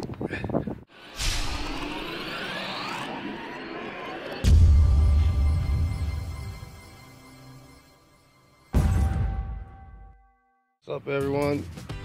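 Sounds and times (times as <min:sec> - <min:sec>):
rising whoosh: 0:00.9 - 0:07.1.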